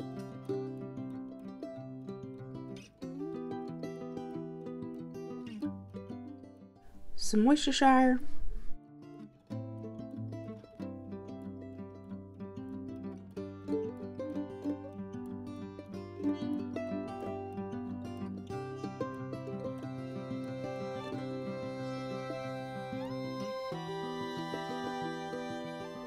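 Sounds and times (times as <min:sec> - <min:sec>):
plucked string background music: 0:00.0 - 0:07.5, 0:08.8 - 0:26.0.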